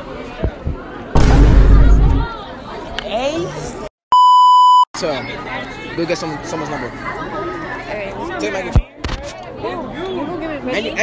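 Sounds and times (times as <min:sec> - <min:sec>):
crowd chatter: 0:00.0 - 0:03.9, 0:05.0 - 0:11.0
high electronic test tone beep: 0:04.1 - 0:04.8.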